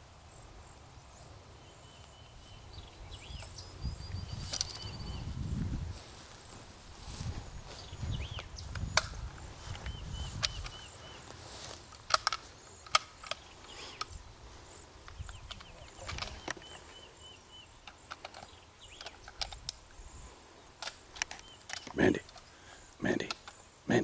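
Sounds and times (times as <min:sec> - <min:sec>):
footsteps in grass: 0:00.5 - 0:17.2
faint bird chirps: 0:01.1 - 0:05.6, 0:09.6 - 0:11.3, 0:13.4 - 0:24.0
sharp clicks: 0:08.3 - 0:11.0, 0:11.9 - 0:14.2, 0:15.0 - 0:16.8, 0:17.8 - 0:19.9, 0:20.8 - 0:23.6.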